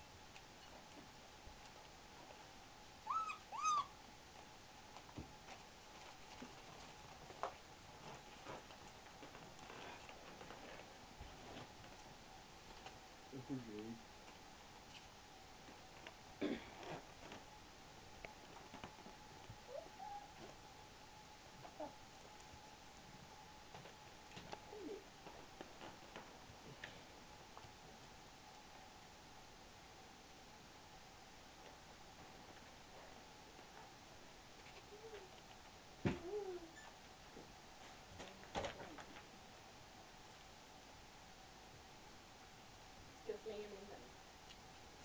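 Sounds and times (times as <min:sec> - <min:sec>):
puppy yelps: 0:03.0 - 0:04.0, 0:19.7 - 0:20.3, 0:36.6 - 0:37.0.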